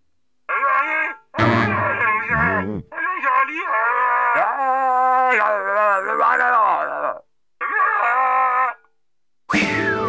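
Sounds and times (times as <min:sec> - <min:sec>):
cartoon character vocalizing: 0:00.5 - 0:08.9.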